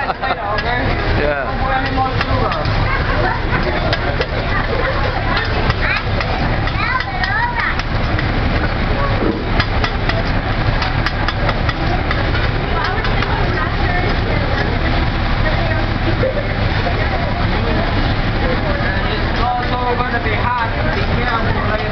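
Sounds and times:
food sizzling: 0.0 - 21.9
metal spatulas clacking on griddle: 9.6 - 13.4.

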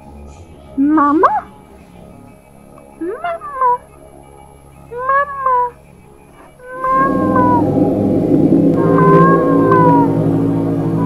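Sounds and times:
eerie droning music: 0.0 - 11.0
high wavering voice calling: 0.6 - 1.6, 2.9 - 3.9, 4.9 - 5.8, 6.4 - 11.0.

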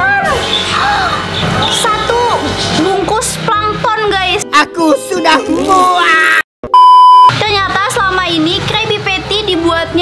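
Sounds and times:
cartoon speech: 3.5 - 6.4
electronic beep: 6.7 - 7.4.

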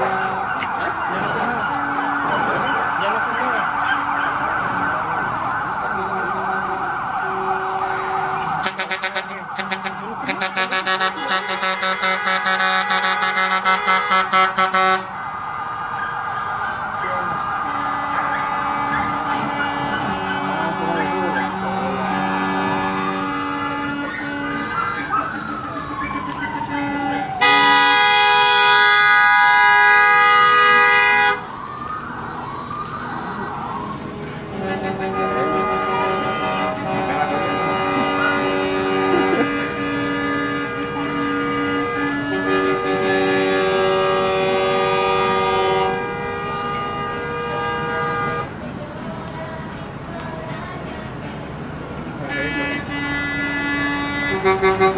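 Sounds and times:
long steady horn blast: 0.0 - 0.6, 1.7 - 2.6, 5.5 - 15.3, 17.0 - 25.2, 26.5 - 31.5, 33.7 - 48.7, 52.1 - 54.9
emergency vehicle sirens: 0.0 - 54.9.

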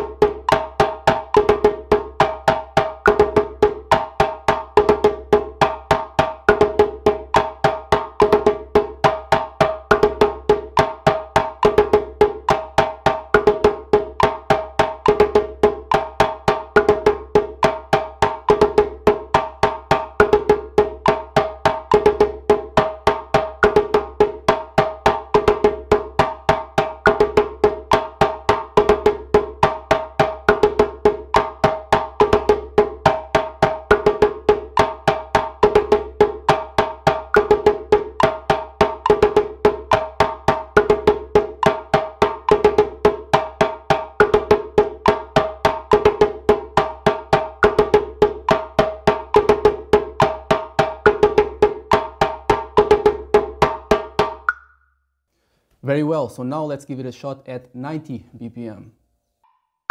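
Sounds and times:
djembe played with hands: 0.0 - 54.6.

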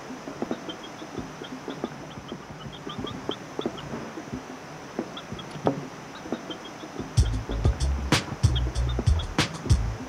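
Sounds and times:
chicken clucking: 0.1 - 4.5, 5.1 - 9.6.

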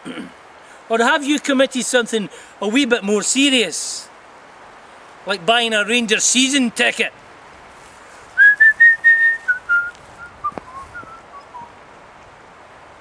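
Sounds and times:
man whistling held notes: 8.4 - 11.7.

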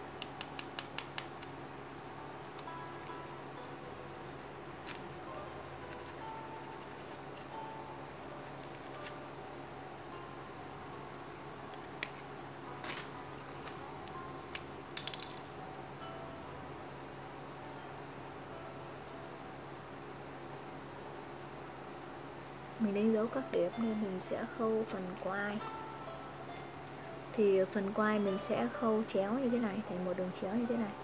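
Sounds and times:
faint music: 0.0 - 31.0
pen clicks: 0.2 - 1.6.

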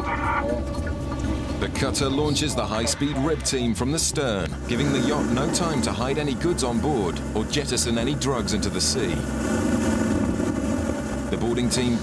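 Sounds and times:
outboard engines droning: 0.0 - 12.0.

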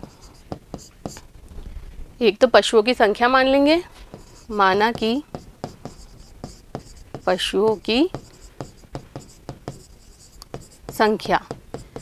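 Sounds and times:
pen writing on board: 0.0 - 1.2, 4.1 - 12.0.

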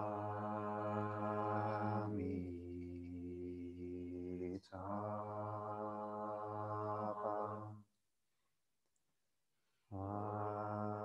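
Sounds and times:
man and woman chanting: 0.0 - 7.7, 10.0 - 11.0.

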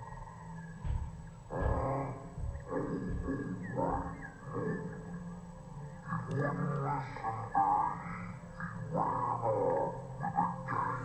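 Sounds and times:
bear growling and grunting: 1.5 - 11.0.

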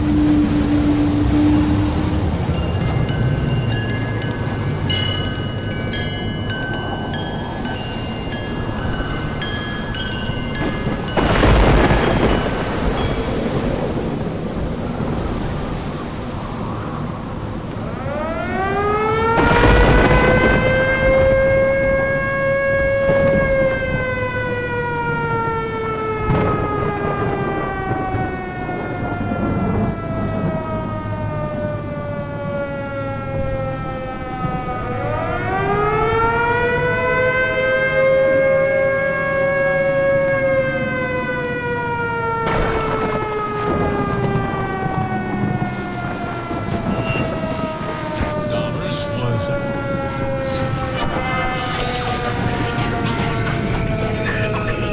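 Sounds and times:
steady rain: 0.0 - 54.9
rolls of thunder: 10.4 - 31.4, 40.0 - 54.9
siren winding up and falling: 18.0 - 28.2, 33.9 - 54.9.

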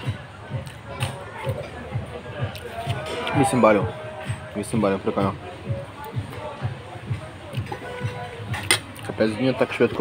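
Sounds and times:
background music: 0.0 - 10.0
faint voices: 0.0 - 10.0.

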